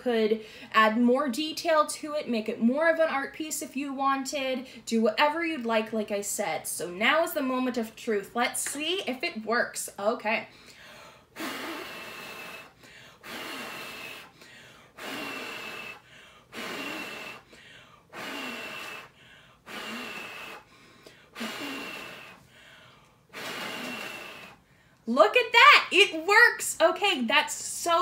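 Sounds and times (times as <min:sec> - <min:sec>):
quick in-breaths: 0:10.5 - 0:25.0
person blowing hard: 0:11.3 - 0:24.7.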